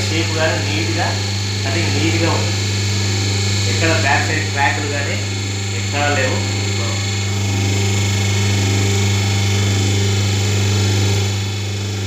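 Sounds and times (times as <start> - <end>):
machine motor and pump hum: 0.0 - 12.0.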